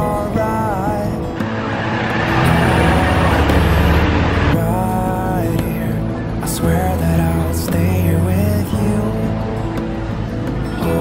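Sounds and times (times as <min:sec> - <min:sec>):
background pop music: 0:00.0 - 0:11.0
bus engine rumble and road noise: 0:00.0 - 0:11.0.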